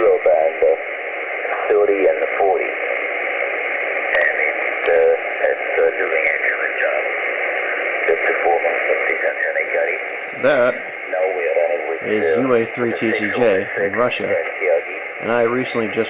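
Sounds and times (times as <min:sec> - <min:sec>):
band noise hiss: 0:00.0 - 0:16.0
thin radio voice: 0:04.0 - 0:16.0.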